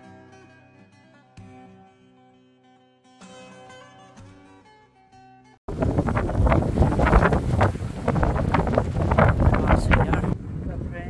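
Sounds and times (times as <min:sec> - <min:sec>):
wind buffeting microphone: 0:05.7 - 0:11.0.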